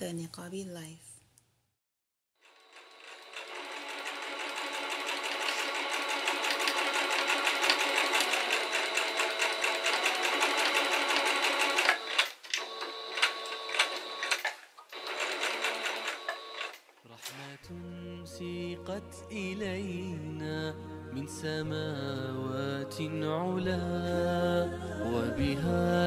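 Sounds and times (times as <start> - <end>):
sewing machine stitching: 2.4 - 17.6.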